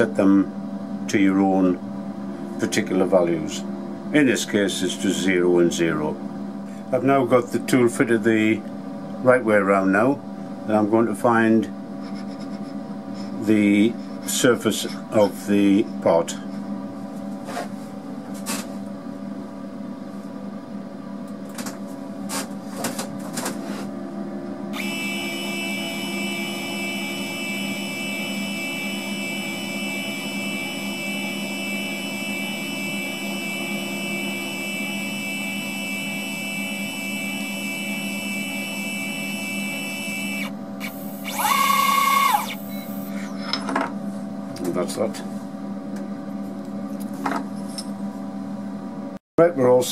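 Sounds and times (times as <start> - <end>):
low machine hum: 0.0 - 49.9
stepper motors whining: 24.7 - 43.2.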